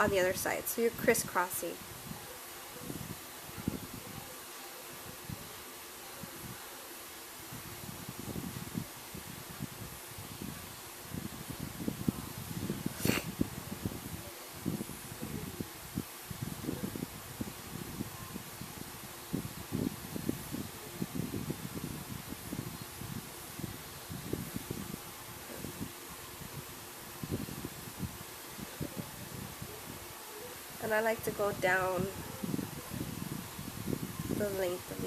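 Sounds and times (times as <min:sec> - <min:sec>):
steady hiss: 0:00.0 - 0:35.0.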